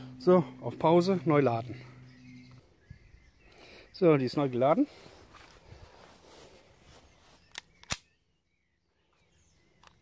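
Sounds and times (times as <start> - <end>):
airsoft pistol clicks: 7.4 - 8.2.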